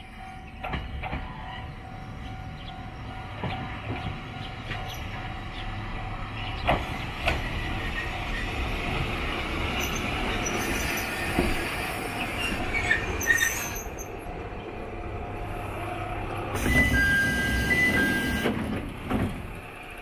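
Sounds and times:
diesel railcar engine rumbling: 0.0s - 20.0s
brake squeals: 9.8s - 14.1s, 16.6s - 18.6s.

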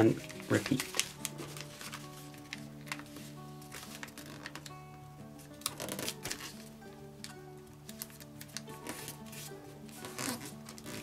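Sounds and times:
paper rustling and crinkling: 0.0s - 4.8s, 5.6s - 11.0s
soft background music: 0.0s - 11.0s.

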